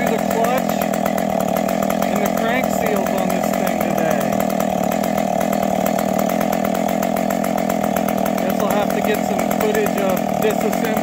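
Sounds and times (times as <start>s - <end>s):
chainsaw idling: 0.0s - 11.0s.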